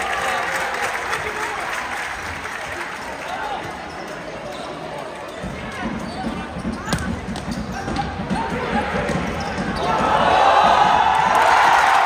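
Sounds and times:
crowd and player voices: 0:00.0 - 0:12.0.

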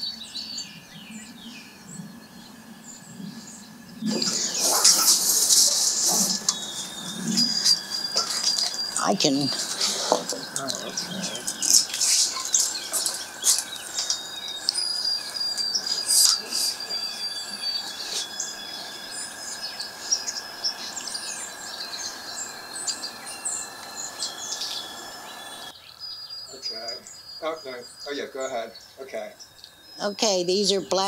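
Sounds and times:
songbirds chirping: 0:00.0 - 0:31.0
steady high-pitched tone: 0:00.0 - 0:31.0.

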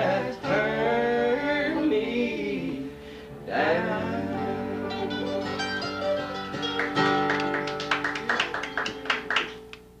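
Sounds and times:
string instrument strummed chords: 0:03.8 - 0:08.2.

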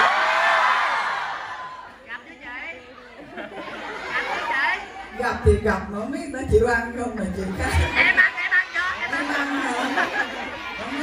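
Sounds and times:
person speaking into microphone: 0:05.2 - 0:08.3
indistinct chatter of voices: 0:07.4 - 0:11.0.

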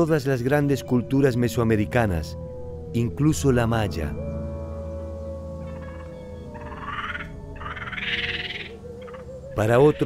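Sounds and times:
frogs croaking: 0:00.0 - 0:10.0.

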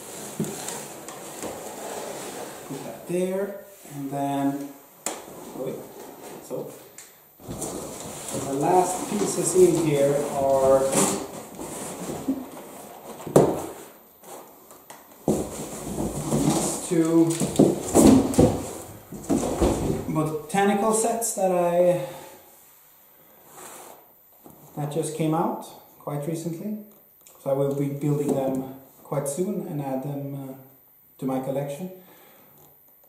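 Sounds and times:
cardboard rustling and scraping: 0:00.0 - 0:03.1, 0:05.2 - 0:14.6, 0:15.2 - 0:20.2.

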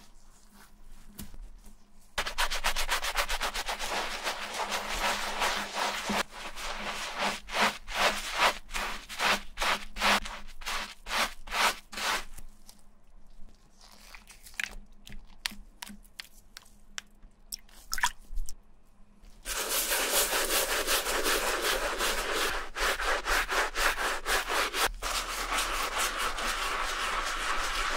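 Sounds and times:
scrub brush scrubbing insole: 0:02.2 - 0:12.5, 0:19.5 - 0:27.9.

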